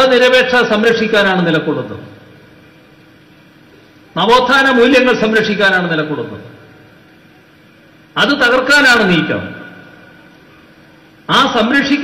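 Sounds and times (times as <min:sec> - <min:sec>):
amplified speech with hall echo: 0:00.0 - 0:02.5, 0:04.1 - 0:07.0, 0:08.2 - 0:10.3, 0:11.2 - 0:12.0
faint room and pa hum and hiss: 0:00.0 - 0:12.0.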